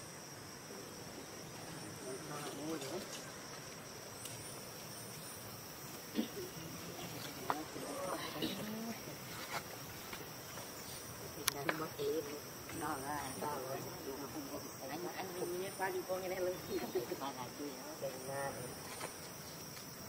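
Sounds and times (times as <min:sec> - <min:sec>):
high insect drone: 0:00.0 - 0:20.0.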